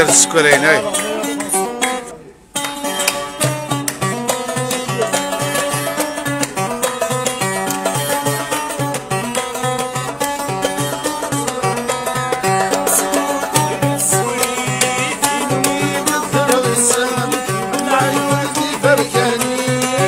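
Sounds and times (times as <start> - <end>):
plucked lute notes: 0.0 - 20.0.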